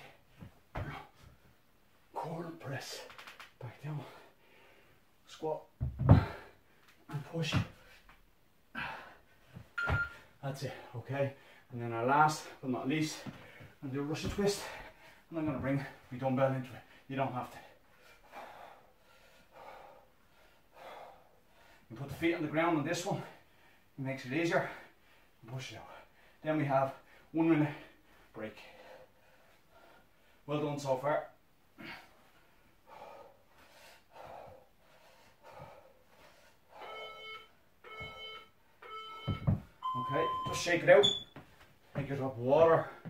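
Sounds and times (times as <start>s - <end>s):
timer beeps: 9.8s - 10.2s, 36.8s - 41.3s.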